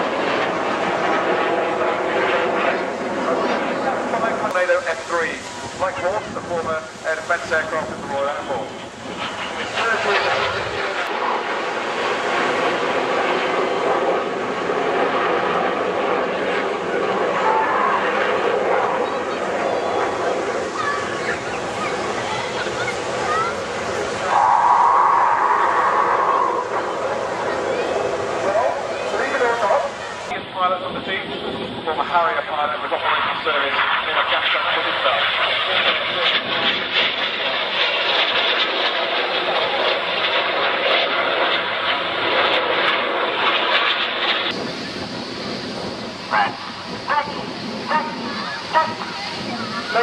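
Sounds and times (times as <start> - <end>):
jet roar: 0.0 - 50.0
spectators chattering: 2.1 - 4.8, 16.2 - 30.6, 46.1 - 50.0.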